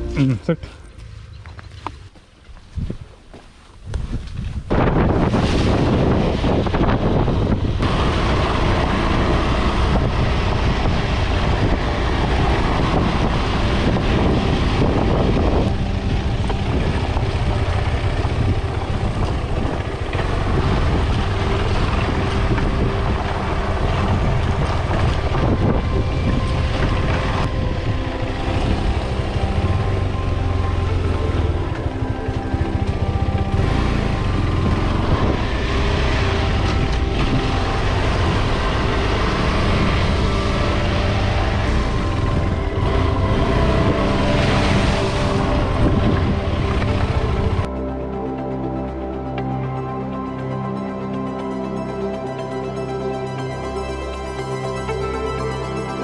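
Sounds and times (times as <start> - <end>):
wind rumbling on microphone: 1.3 - 47.8
motorcycle engine running: 5.8 - 47.8.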